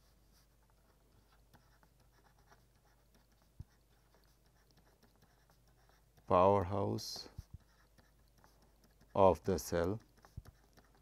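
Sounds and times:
faint low electrical hum: 0.0 - 11.0
stylus scratching and tapping tablet: 0.0 - 11.0.

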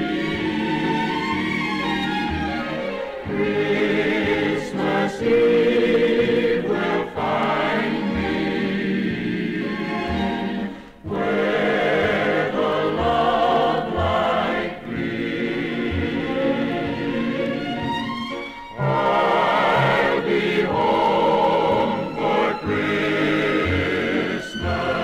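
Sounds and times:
choir singing with orchestra: 0.0 - 25.0.

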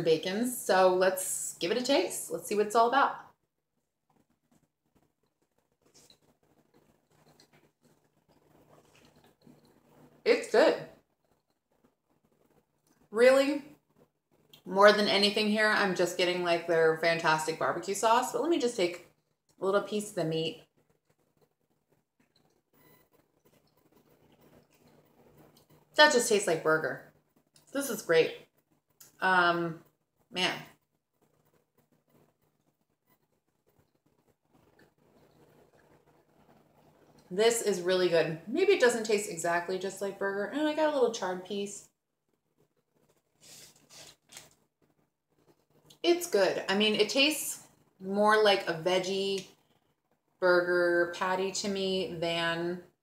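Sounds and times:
faint chewing: 4.0 - 10.2, 11.0 - 13.1, 20.6 - 25.9, 30.8 - 37.3.

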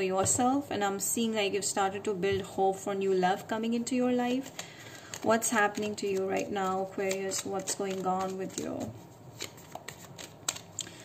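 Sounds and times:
cards being shuffled: 4.3 - 11.0.

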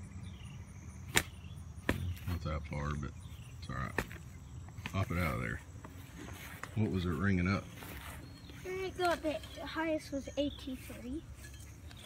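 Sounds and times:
insects chirping: 0.0 - 12.0
digging tool chopping into soil: 1.1 - 2.4, 3.9 - 4.2.

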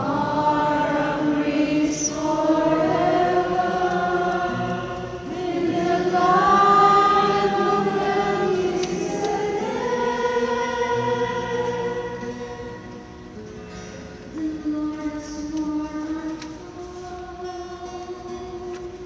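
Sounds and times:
soprano singing chant-like psalm: 0.0 - 13.1.

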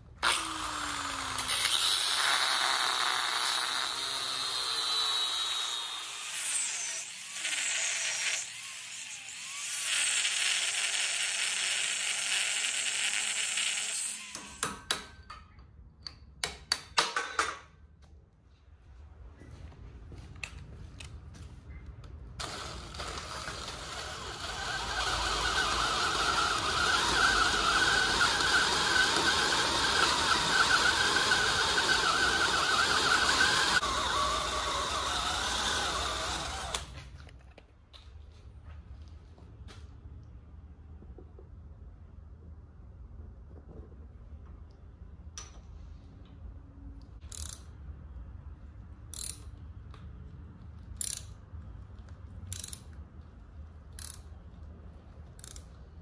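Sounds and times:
cordless drill boring metal: 0.2 - 14.7, 22.4 - 37.0
angle grinder grinding steel: 22.4 - 37.0.

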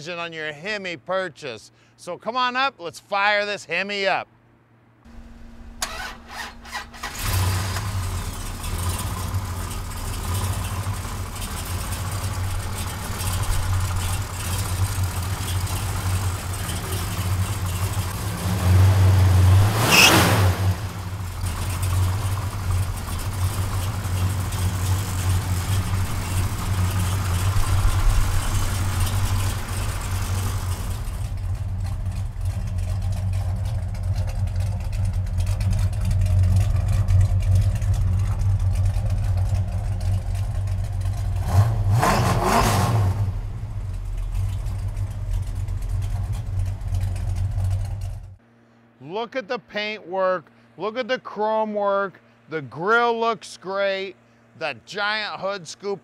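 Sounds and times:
engine running and revving: 5.1 - 48.4.

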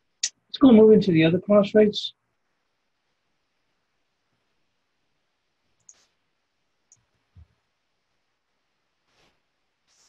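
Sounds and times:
computer mouse clicks: 5.8 - 6.1.

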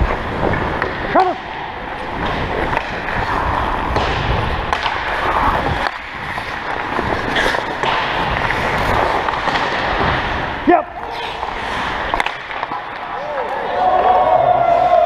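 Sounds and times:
skates scraping on ice: 0.0 - 15.0.

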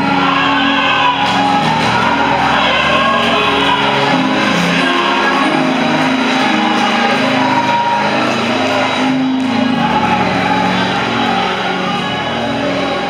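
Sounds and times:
instrumental accompaniment: 0.0 - 13.0.

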